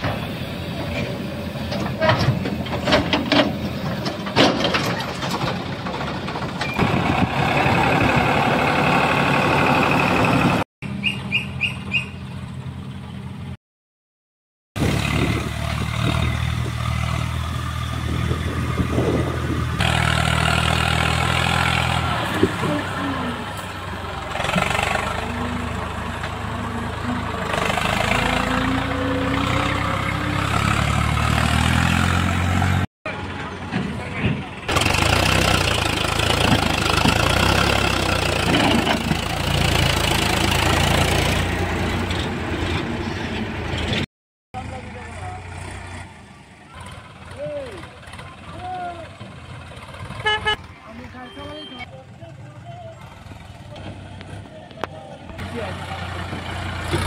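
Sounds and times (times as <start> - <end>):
diesel tractor engine under load: 0.0 - 13.6, 14.8 - 57.0.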